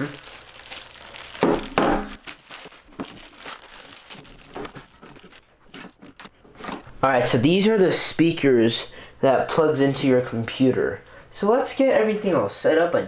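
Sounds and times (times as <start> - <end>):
plastic wrapping crinkling: 0.0 - 6.4.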